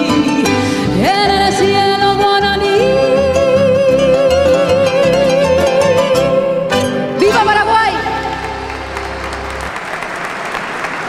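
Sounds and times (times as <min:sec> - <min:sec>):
woman singing with vibrato: 0:00.0 - 0:08.6
plucked-string accompaniment: 0:00.0 - 0:09.7.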